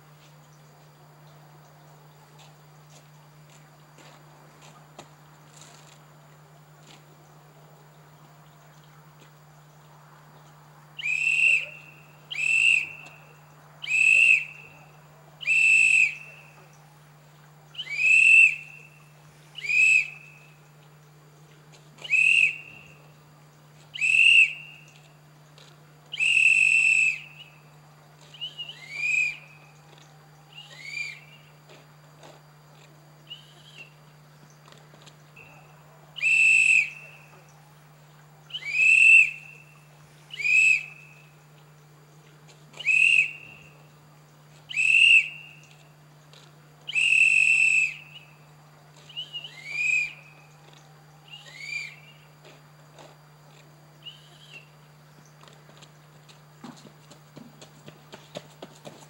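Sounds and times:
steady low hum: 0.0 - 59.0
high-pitched whistle-like calls: 11.0 - 16.8, 17.8 - 20.6, 22.0 - 23.1, 23.9 - 25.1, 26.1 - 31.5, 33.3 - 34.0, 35.4 - 37.6, 38.5 - 41.4, 42.7 - 43.9, 44.7 - 45.9, 46.9 - 52.3, 54.0 - 54.8.

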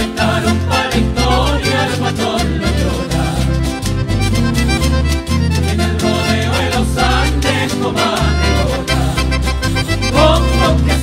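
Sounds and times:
folk dance music with guitars: 0.0 - 11.0.

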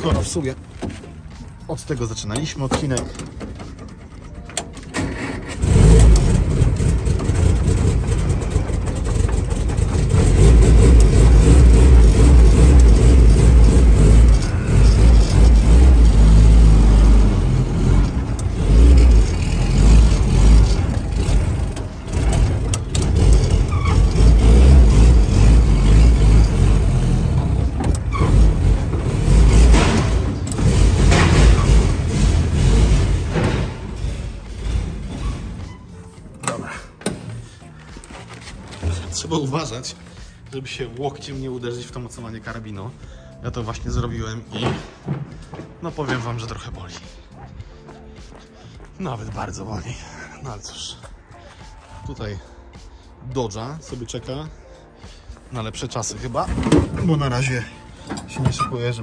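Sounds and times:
jeep engine starting and revving: 4.6 - 40.4.

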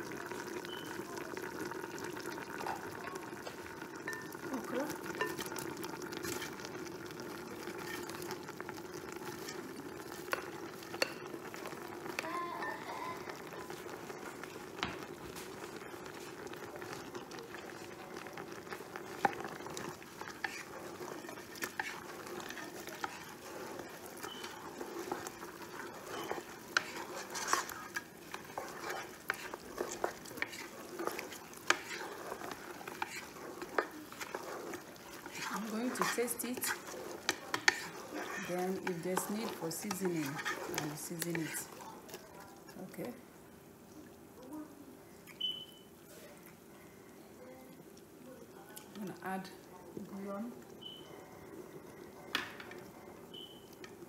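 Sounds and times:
wooden spoon scraping and knocking pot: 2.6 - 42.3
okra poured into pot: 15.6 - 42.8.

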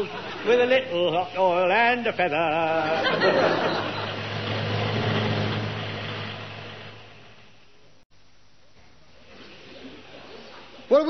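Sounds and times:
van engine running: 0.0 - 7.7.

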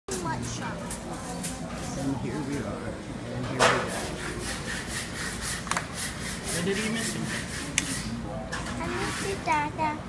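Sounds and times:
room noise: 0.1 - 10.0.

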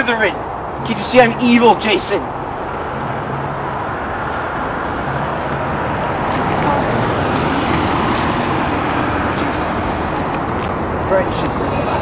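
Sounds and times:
car engine and tyre noise: 0.0 - 12.0.

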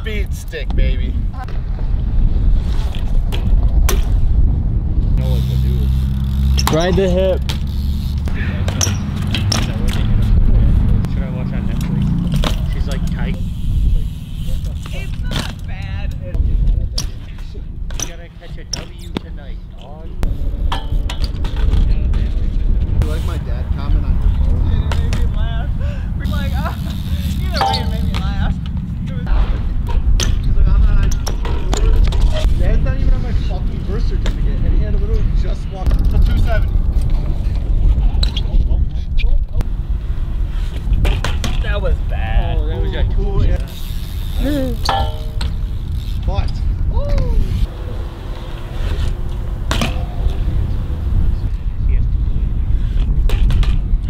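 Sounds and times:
steady low rumble: 0.0 - 18.6, 19.4 - 54.0
bike tyres rolling on concrete: 0.0 - 54.0
bike knocks and clacks: 2.8 - 4.3, 5.9 - 23.2, 24.2 - 25.5, 26.3 - 29.1, 29.8 - 32.6, 40.6 - 41.9, 43.5 - 47.6, 52.8 - 54.0
voices: 21.6 - 36.7, 41.5 - 52.8.

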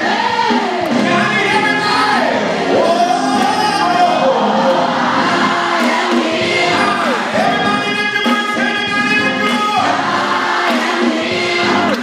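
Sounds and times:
man singing gospel into a microphone: 0.9 - 4.9, 6.4 - 10.2.

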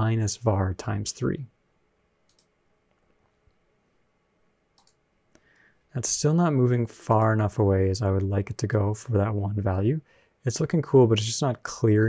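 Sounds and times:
computer mouse and keyboard clicks: 2.3 - 2.5, 4.8 - 5.0.

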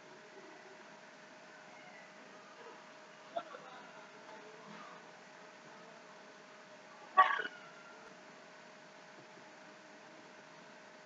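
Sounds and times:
faint steady hum: 0.0 - 11.0
person hiccup-like vocal sound: 7.2 - 7.5.

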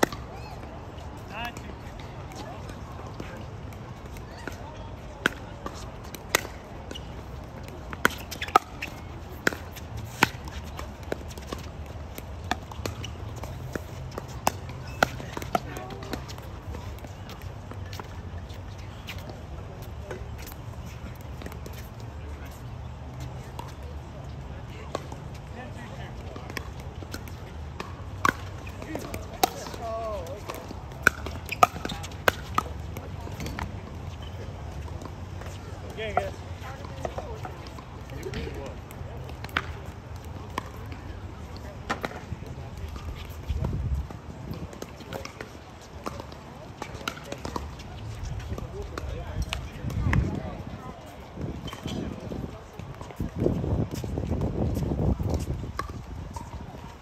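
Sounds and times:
faint voices: 0.0 - 57.0
paddles popping pickleball: 26.3 - 33.7.

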